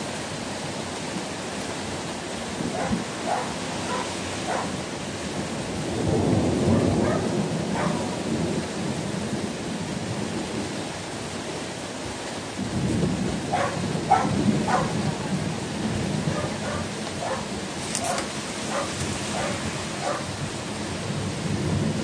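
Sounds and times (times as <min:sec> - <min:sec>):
steady rain: 0:00.0 - 0:22.0
thunder rumbling: 0:02.5 - 0:10.7, 0:12.6 - 0:22.0.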